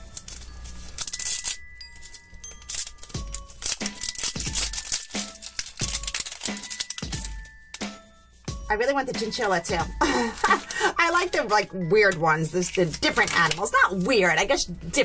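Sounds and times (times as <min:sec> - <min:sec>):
plastic wrapper crinkling and tearing: 0:00.0 - 0:08.0, 0:10.0 - 0:14.6
background music: 0:00.0 - 0:15.0.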